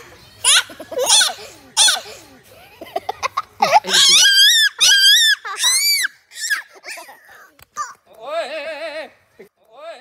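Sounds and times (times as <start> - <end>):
children screaming with laughter: 3.6 - 7.2.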